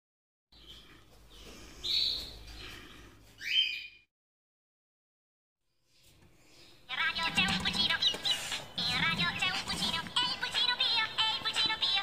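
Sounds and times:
high bird chirps: 0:03.4 - 0:04.1.

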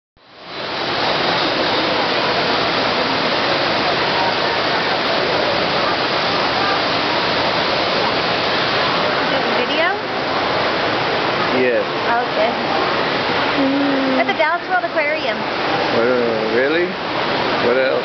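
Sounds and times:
waterfall rushing: 0:00.2 - 0:18.0.

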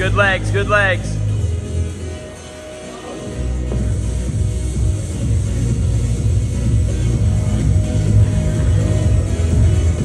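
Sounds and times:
loud music with heavy bass: 0:00.0 - 0:10.0.

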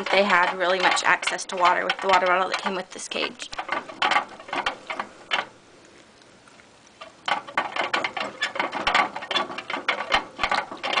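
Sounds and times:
hamster cage clicks and rattles: 0:00.0 - 0:05.5, 0:07.2 - 0:11.0.

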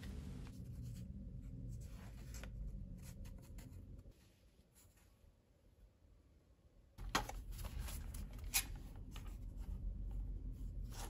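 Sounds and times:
low room hum: 0:00.0 - 0:11.0
paper rustling: 0:07.0 - 0:09.6.

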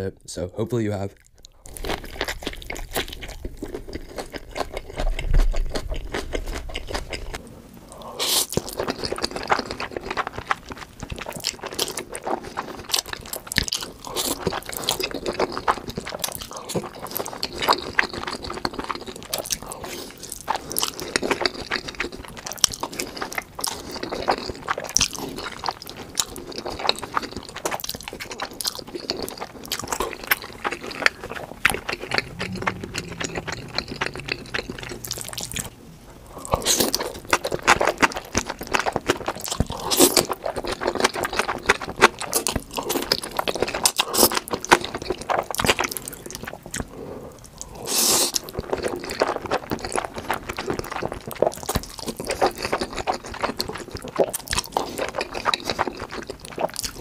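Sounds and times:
chewing: 0:01.2 - 0:57.0
wet slurping of noodles: 0:47.7 - 0:48.4.

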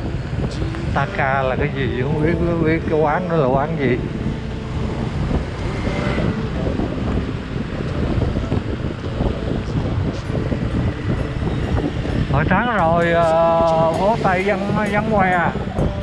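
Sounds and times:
motorbike engine: 0:00.0 - 0:16.0
wind buffeting microphone: 0:00.0 - 0:16.0.

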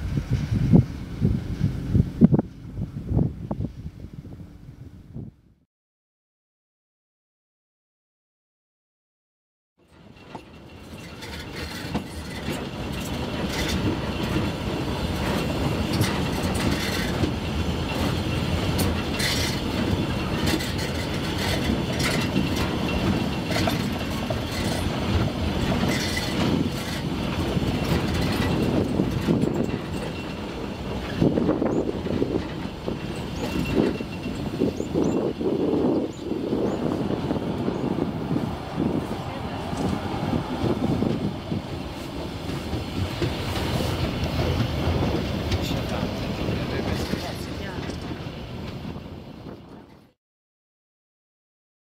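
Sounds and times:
train wheels rumbling on track: 0:00.0 - 0:04.9, 0:09.8 - 0:50.2
train cars clattering: 0:09.8 - 0:50.2.

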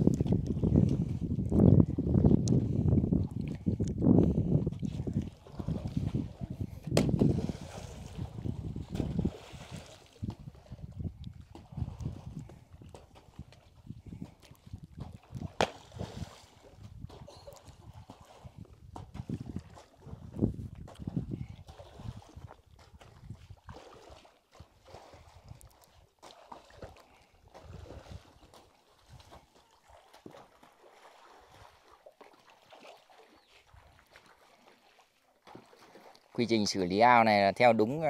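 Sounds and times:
water sloshing and splashing: 0:00.0 - 0:37.8.

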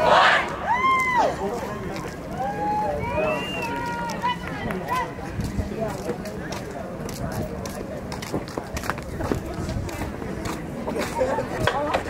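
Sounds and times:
low background murmur: 0:00.0 - 0:12.0
people talking at once: 0:00.0 - 0:12.0.

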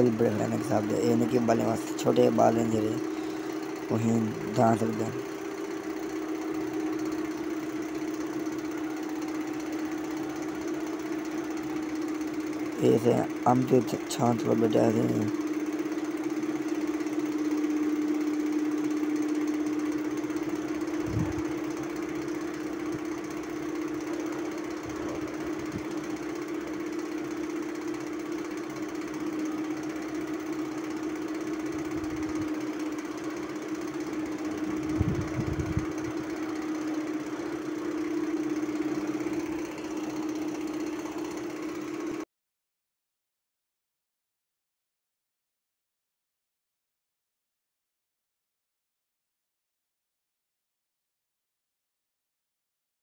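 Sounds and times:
motor humming: 0:00.0 - 0:42.2.

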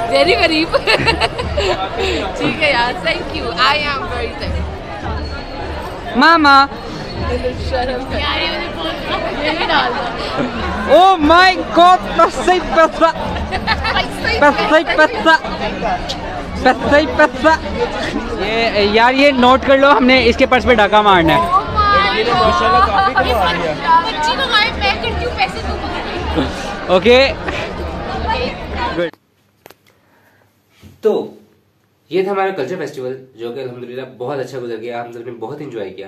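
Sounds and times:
women chattering: 0:00.0 - 0:06.1, 0:06.8 - 0:18.3, 0:21.4 - 0:29.0
low regular beat: 0:00.3 - 0:03.0.

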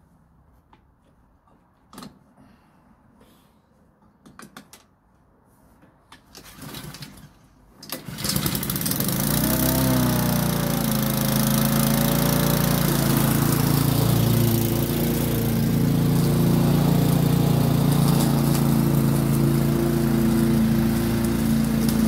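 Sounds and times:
lawnmower engine starting and running: 0:06.3 - 0:22.0
starter cord pull: 0:07.8 - 0:09.7.

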